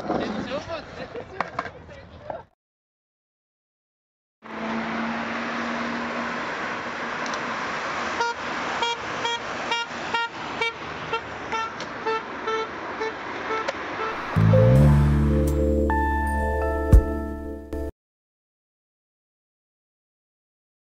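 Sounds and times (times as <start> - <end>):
traffic noise: 4.4 - 16.5
vehicle horn tooting: 8.2 - 14.5.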